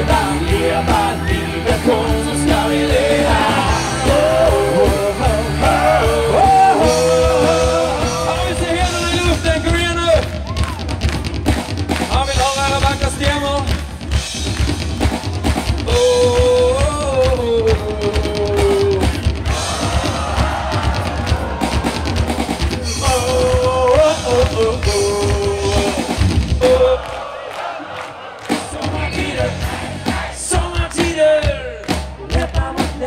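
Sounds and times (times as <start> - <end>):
lead vocal singing: 0.0 - 9.4, 15.8 - 33.0
live rock band playing: 0.0 - 27.0, 28.5 - 33.0
crowd noise: 0.0 - 33.0.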